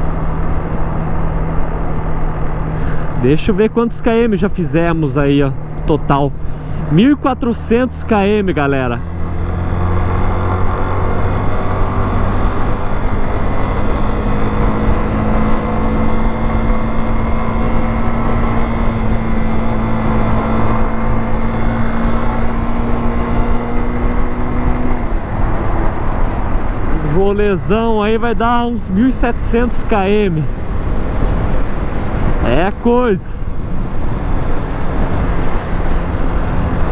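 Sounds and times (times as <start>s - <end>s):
rush of riding noise: 0.0s - 36.9s.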